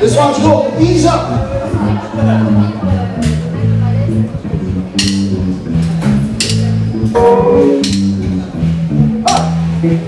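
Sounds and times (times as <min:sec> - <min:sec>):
electric upright bass line: 0:00.0 - 0:10.0
electric guitar: 0:01.3 - 0:10.0
drums: 0:02.9 - 0:10.0.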